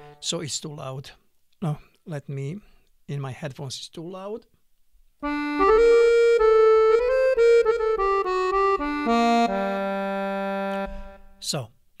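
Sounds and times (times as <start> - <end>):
accordion melody: 0.0 - 0.3, 5.2 - 11.4.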